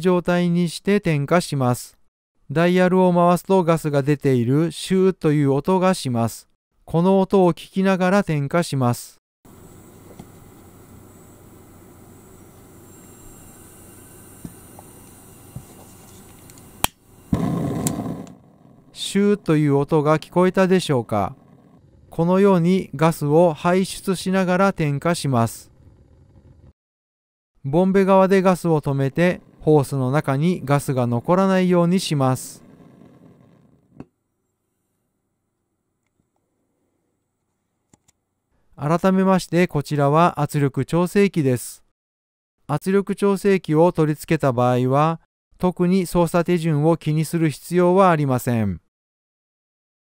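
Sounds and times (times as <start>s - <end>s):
gas hissing from burner: 9.5s - 18.8s, 29.1s - 33.9s
burner lighting with loud rush: 9.5s - 22.1s, 30.3s - 33.9s
sharp igniter click: 16.2s - 18.4s.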